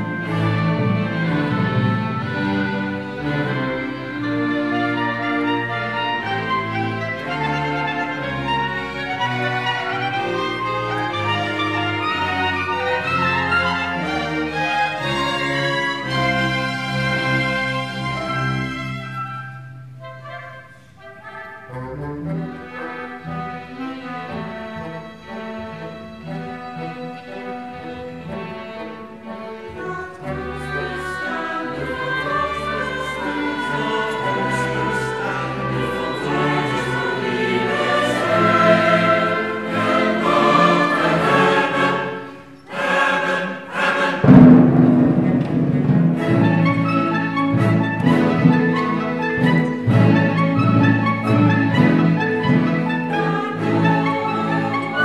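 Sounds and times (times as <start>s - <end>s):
choir singing: 0.0s - 19.2s, 20.0s - 55.0s
chamber orchestra playing: 0.0s - 55.0s.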